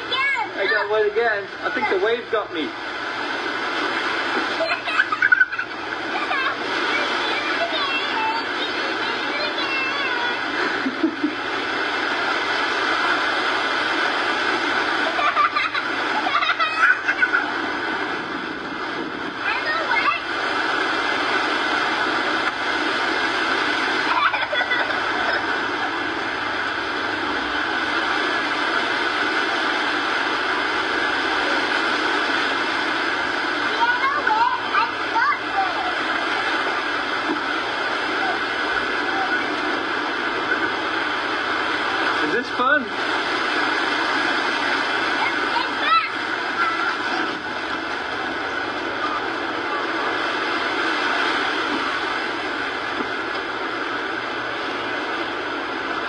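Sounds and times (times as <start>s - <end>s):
waves washing on beach: 0.0s - 56.0s.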